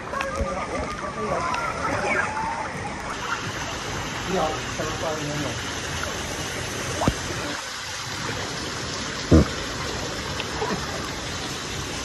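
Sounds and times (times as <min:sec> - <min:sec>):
water rushing and trickling: 0:00.0 - 0:12.0.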